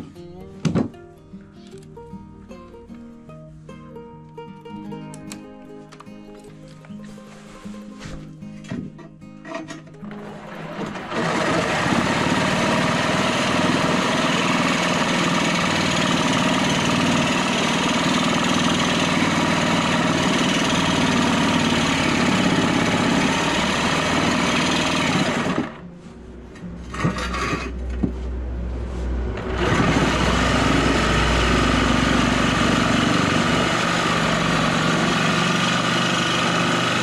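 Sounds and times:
reciprocating saw cutting steel: 10.1s - 25.8s, 26.8s - 28.0s, 29.1s - 37.0s.

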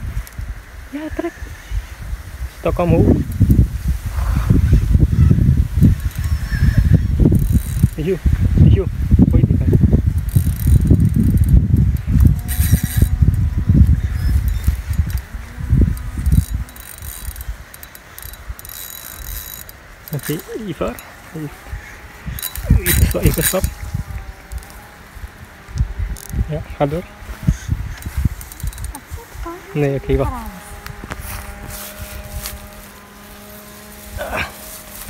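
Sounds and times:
rumbling microphone noise: 0.0s - 17.7s, 19.9s - 35.0s
fishing reel whirring: 3.2s - 8.3s, 9.3s - 35.0s.

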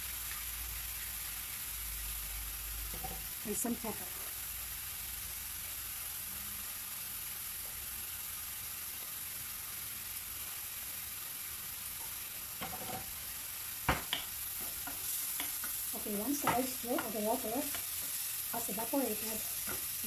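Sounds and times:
mushrooms sizzling in a frying pan: 0.0s - 20.0s
wooden spoon knocking a pan: 12.6s - 13.1s, 13.9s - 18.2s, 19.6s - 19.9s.

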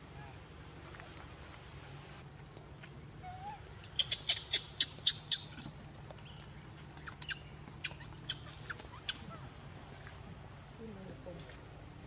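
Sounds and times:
bird chirping: 3.4s - 9.3s.

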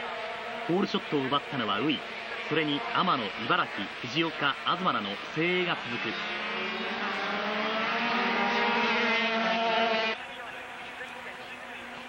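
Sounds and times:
racing motorcycle engines: 0.0s - 12.0s
distant drone of motorcycles: 3.9s - 12.0s.

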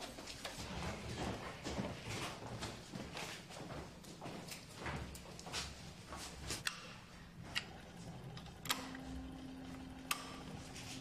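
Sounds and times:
steady low hum: 4.0s - 11.0s.

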